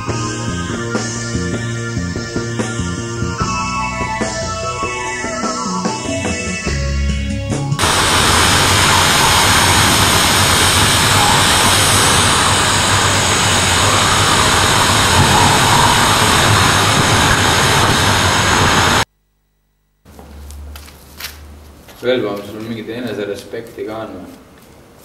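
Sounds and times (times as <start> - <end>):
loud rushing static noise: 7.8 - 19.1.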